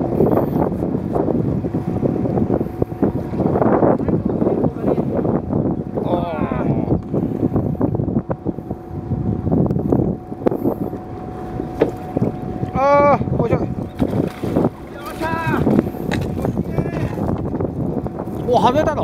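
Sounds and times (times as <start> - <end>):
water noise: 0.0 - 19.0
wind: 0.0 - 19.0.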